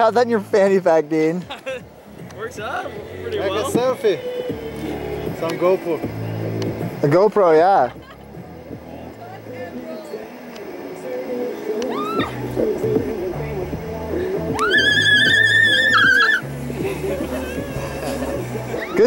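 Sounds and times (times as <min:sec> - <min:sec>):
background music with bass line: 0:01.4 - 0:09.8, 0:10.7 - 0:19.0
rising whoop: 0:11.8 - 0:12.4, 0:14.5 - 0:16.4
woman squealing: 0:11.9 - 0:12.4, 0:14.6 - 0:16.4.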